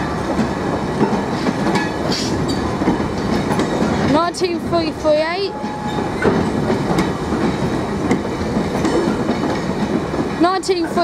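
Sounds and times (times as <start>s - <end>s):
freight train wheels rumbling: 0.0s - 11.0s.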